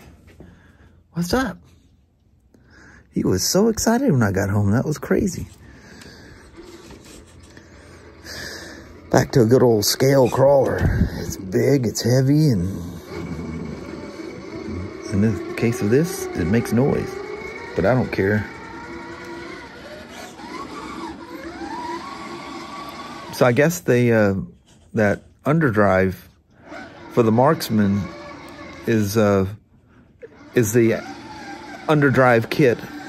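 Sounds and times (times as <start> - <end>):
toy car motor and drivetrain: 4.4 - 33.0.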